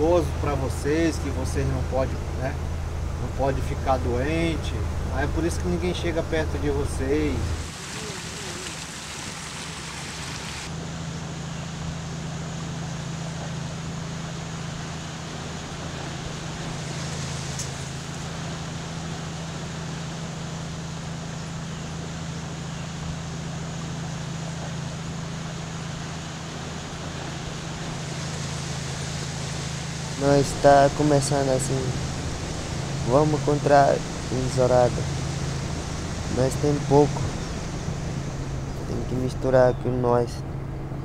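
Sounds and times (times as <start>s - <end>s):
boat motor humming: 0.0s - 41.0s
water and air noise: 0.0s - 41.0s.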